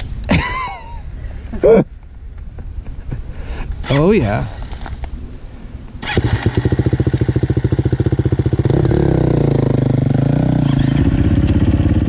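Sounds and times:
dirt bike engine revving: 0:06.0 - 0:12.0.

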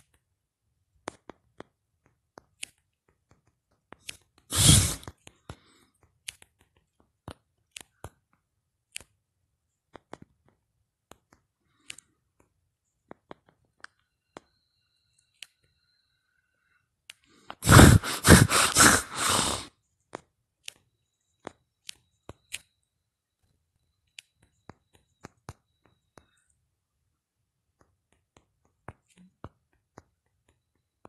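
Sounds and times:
loud burst of noise: 0:04.5 - 0:05.0, 0:17.6 - 0:19.7.

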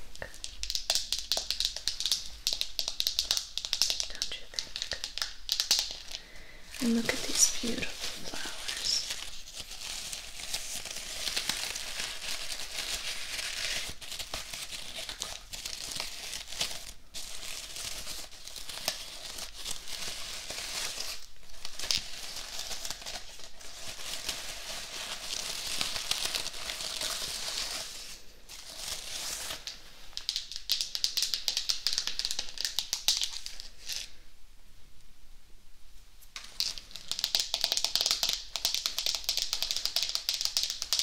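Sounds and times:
artificial flowers rustling and crinkling: 0:00.0 - 0:34.2, 0:36.2 - 0:41.0.

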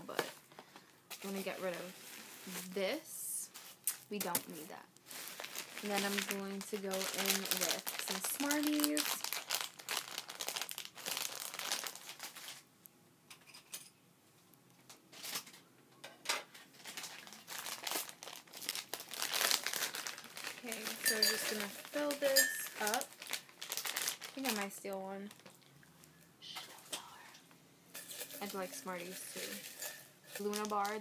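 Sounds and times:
plastic bag crinkling: 0:01.1 - 0:02.8, 0:03.5 - 0:12.7, 0:16.6 - 0:26.2, 0:28.0 - 0:31.0.

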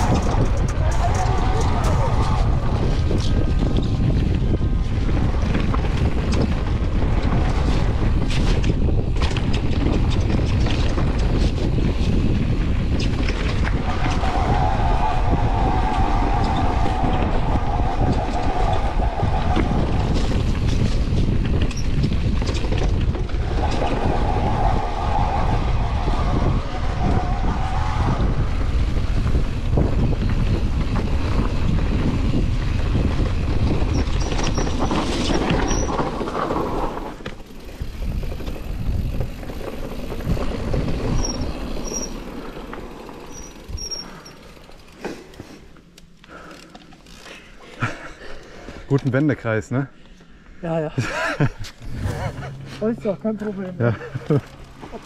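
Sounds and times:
wind on microphone: 0:00.0 - 0:42.6
bike rattling on dirt trail: 0:00.0 - 0:49.4, 0:51.0 - 0:55.0.

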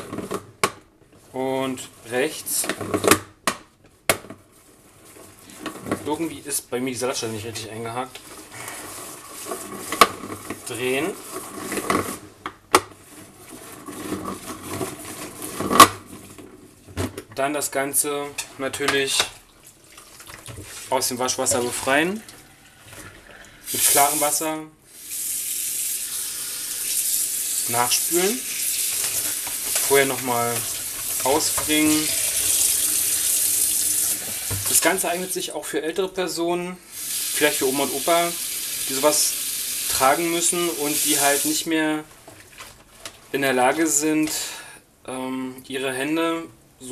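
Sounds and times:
water splashing: 0:19.5 - 0:20.9, 0:26.7 - 0:35.2
tap running into sink: 0:30.6 - 0:34.8.

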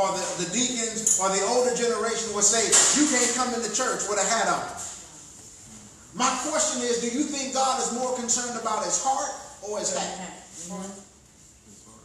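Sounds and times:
pastor preaching: 0:00.0 - 0:04.8, 0:06.2 - 0:10.1.

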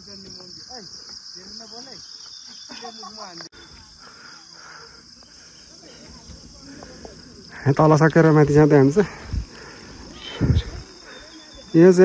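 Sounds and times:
insect chorus drone: 0:00.0 - 0:12.0
faint distant voices: 0:03.6 - 0:12.0.

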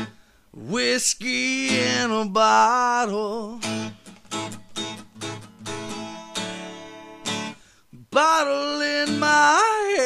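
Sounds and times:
acoustic guitar strumming: 0:00.0 - 0:10.0
person singing: 0:00.6 - 0:03.8, 0:08.0 - 0:10.0.

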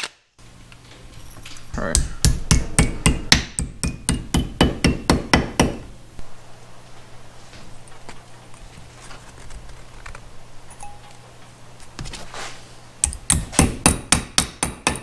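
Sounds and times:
hammer striking metal bracket: 0:01.9 - 0:05.9.

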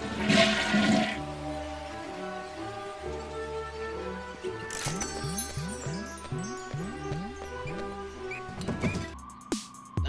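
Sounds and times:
toilet flushing: 0:00.0 - 0:01.3
background music: 0:00.0 - 0:10.0.

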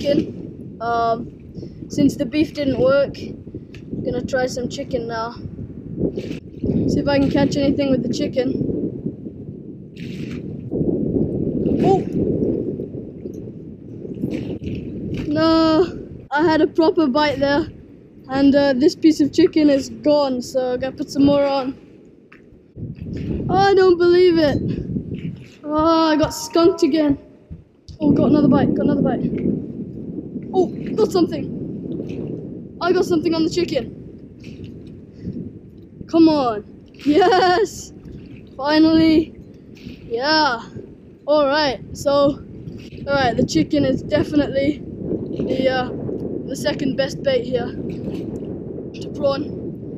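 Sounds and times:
wind buffeting microphone: 0:00.0 - 0:49.9.

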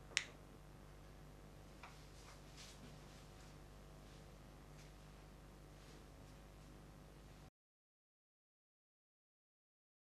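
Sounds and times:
faint steady hum: 0:00.0 - 0:07.5.

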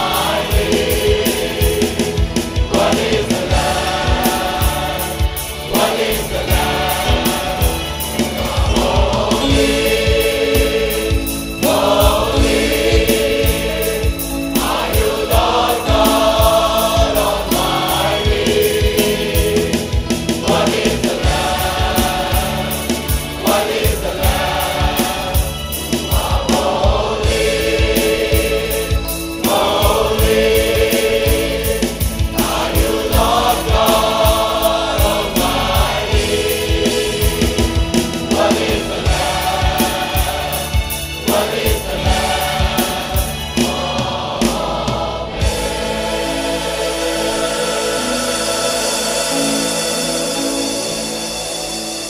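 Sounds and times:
steady drum beat: 0:00.0 - 0:49.8
keyboard: 0:00.0 - 0:52.0
large choir singing: 0:00.0 - 0:52.0.

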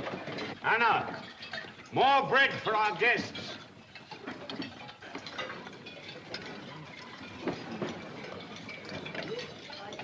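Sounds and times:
tableware clattering: 0:00.0 - 0:10.0.

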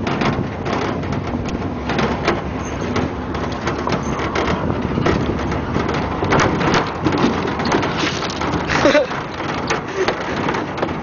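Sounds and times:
rattles and knocks: 0:00.0 - 0:11.0
steady road noise: 0:00.0 - 0:11.0
wind buffeting microphone: 0:00.0 - 0:11.0.

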